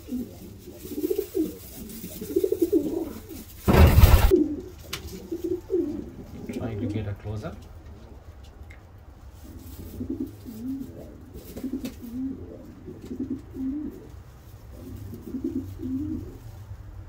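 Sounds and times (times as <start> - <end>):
pigeon cooing: 0.0 - 7.1, 9.4 - 16.6.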